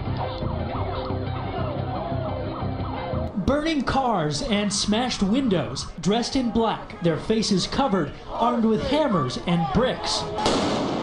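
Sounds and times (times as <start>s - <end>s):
siren yelping: 0.0s - 3.5s.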